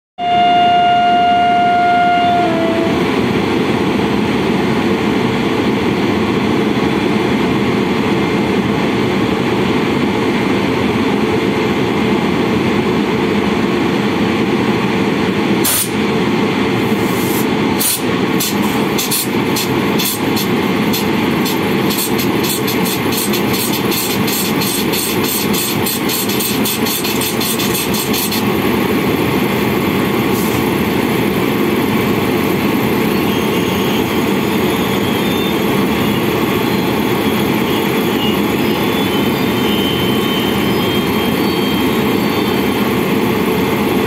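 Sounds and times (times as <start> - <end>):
electric train horn: 0.2 - 3.2, 33.1 - 42.8
train rumbling: 0.2 - 44.0
wheel clicks over rail joints: 17.9 - 28.5.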